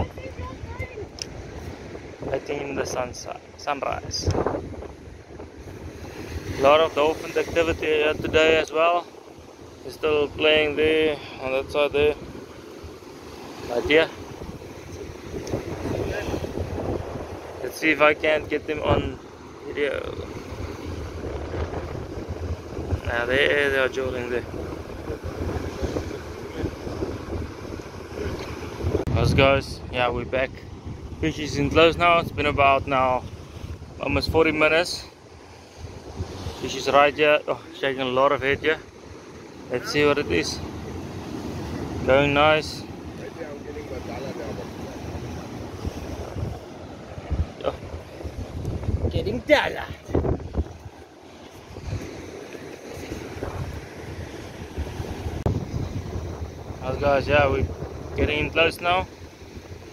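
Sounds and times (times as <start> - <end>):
surf breaking on rocks: 0.0 - 59.9
wind buffeting microphone: 0.0 - 59.9.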